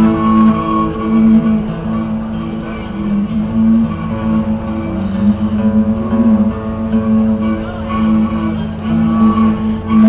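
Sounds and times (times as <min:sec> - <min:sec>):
acoustic guitar: 0:00.0 - 0:10.0
low drone: 0:00.0 - 0:10.0
melody instrument sustained notes: 0:00.0 - 0:10.0.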